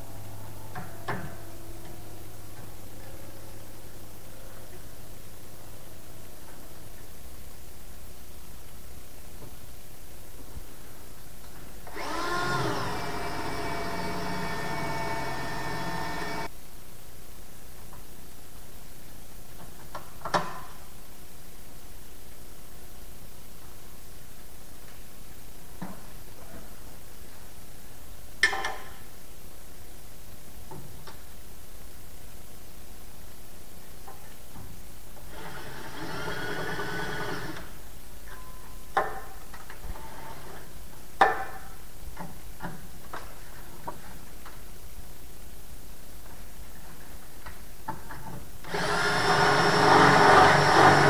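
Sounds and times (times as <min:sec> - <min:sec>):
cordless drill whining: 0:11.9 - 0:16.5, 0:35.3 - 0:37.7, 0:48.7 - 0:51.0.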